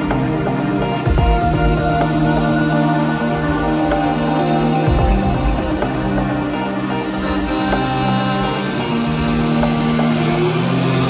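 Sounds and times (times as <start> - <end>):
rising white-noise sweep: 0.0 - 11.0
steady bass: 0.0 - 11.0
synth chords: 0.0 - 11.0.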